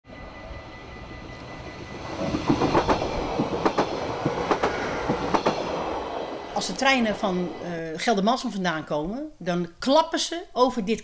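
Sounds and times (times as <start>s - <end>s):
train rumbling: 0.0s - 8.4s
train wheels clacking: 0.6s - 7.6s.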